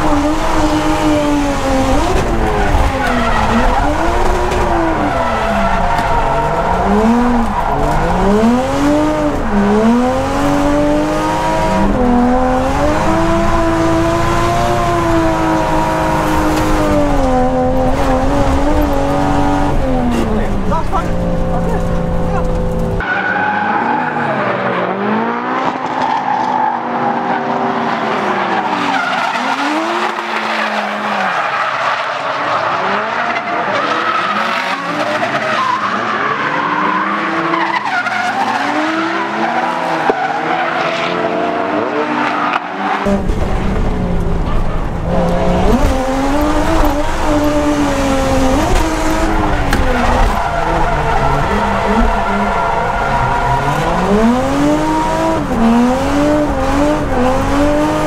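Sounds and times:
car engines revving: 0.0 - 58.0.

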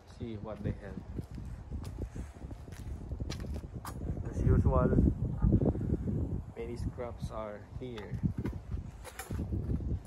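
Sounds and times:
footsteps on gravel: 0.0 - 4.0.

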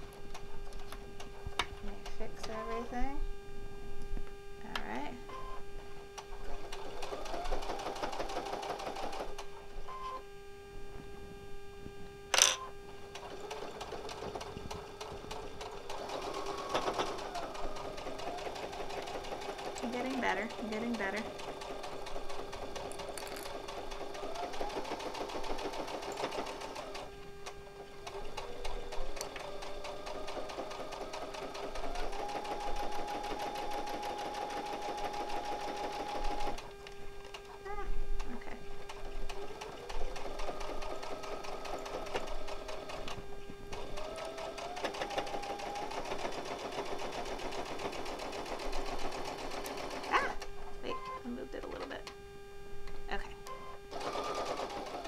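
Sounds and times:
sewing machine motor whine: 4.8 - 10.2, 12.3 - 52.2, 53.1 - 55.0.

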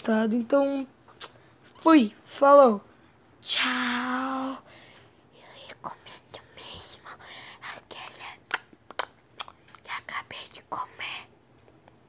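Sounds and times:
person whispering: 5.3 - 8.5, 9.8 - 11.3.

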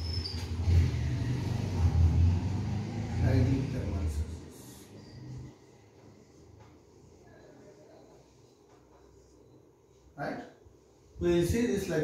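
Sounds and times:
marker squeaking on whiteboard: 0.0 - 0.6.

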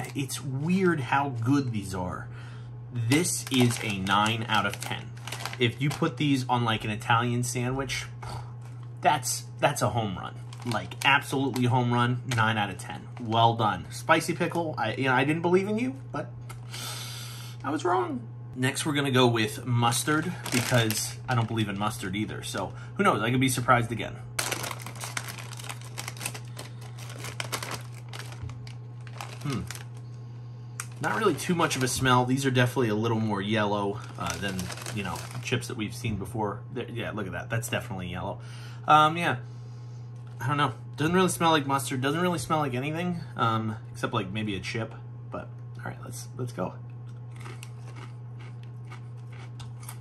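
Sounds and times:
low steady hum: 0.0 - 50.0
chip bag crinkling: 3.0 - 6.4, 10.4 - 13.5, 19.8 - 22.7, 24.4 - 30.1, 30.8 - 35.8, 47.2 - 50.0.

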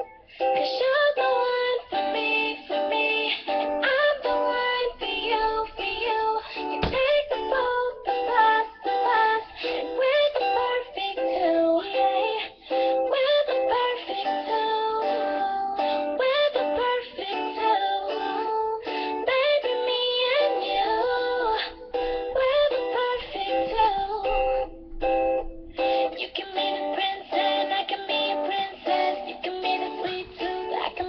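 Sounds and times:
electric guitar strumming: 0.0 - 31.0
girl singing a pop song: 0.0 - 31.0.

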